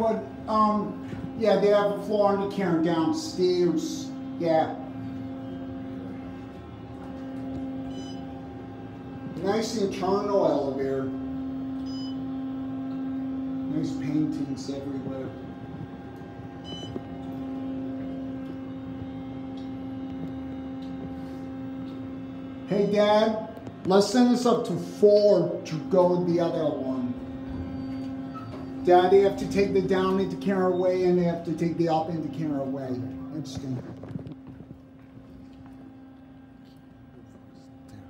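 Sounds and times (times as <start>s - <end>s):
elevator hum: 0.0s - 38.0s
short high-pitched beep: 16.6s - 17.0s.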